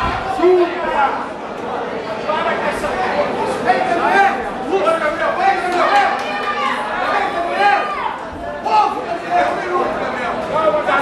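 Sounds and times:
spectators shouting and talking: 0.0 - 11.0.

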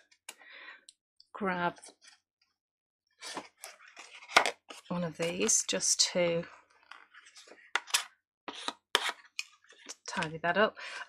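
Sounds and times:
card scuffing and rustling: 3.2 - 5.5.

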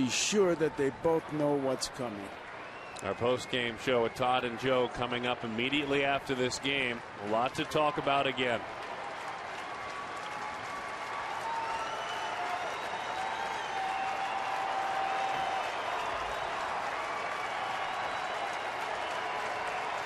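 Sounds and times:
crowd applauding and cheering: 0.0 - 20.0.

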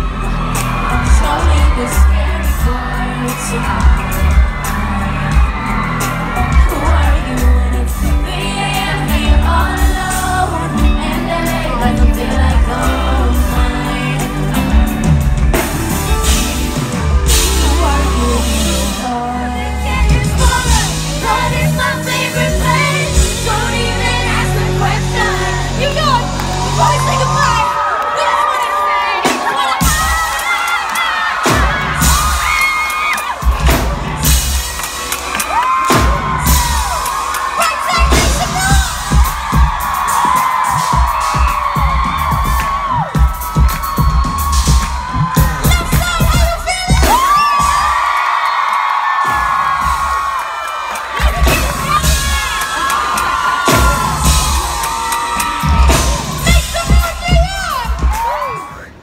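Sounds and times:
fans screaming and singing: 0.0 - 59.0
pop band through loudspeakers: 0.0 - 59.0.

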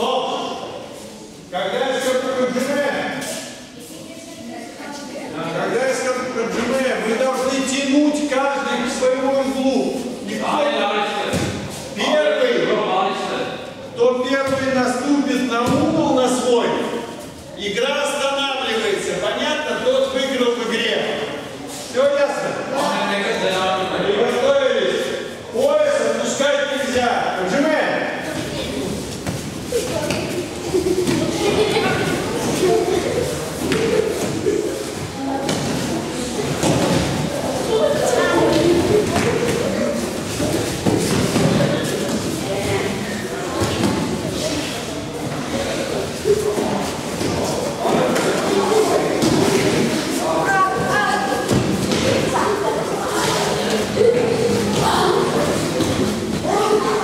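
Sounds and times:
children's voices echoing: 28.2 - 57.0.

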